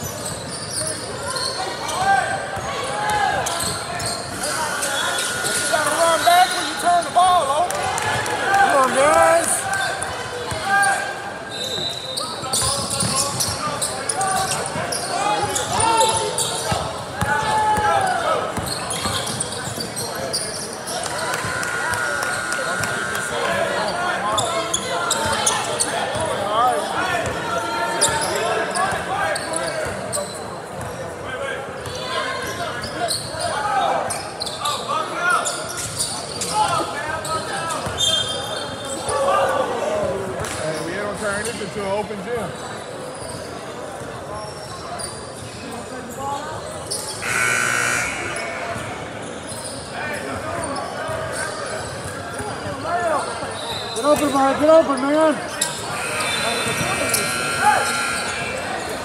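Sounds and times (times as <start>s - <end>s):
indistinct chatter and calls: 0.0s - 10.1s, 44.4s - 51.9s, 52.7s - 59.0s.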